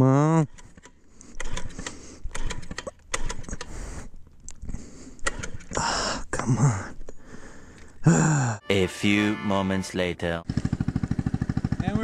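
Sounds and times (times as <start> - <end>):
scooter engine cranking: 0.5 - 3.7, 10.4 - 12.0.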